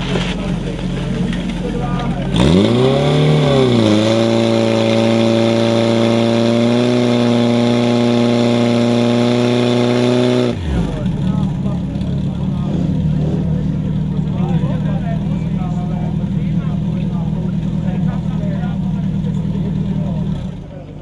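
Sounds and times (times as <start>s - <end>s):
fire pump engine running: 0.0s - 21.0s.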